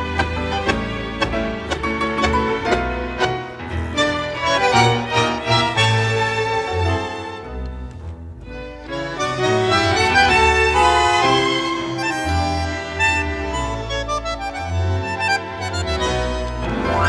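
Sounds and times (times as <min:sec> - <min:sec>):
bandoneons: 0:00.0 - 0:17.0
violins: 0:00.0 - 0:17.0.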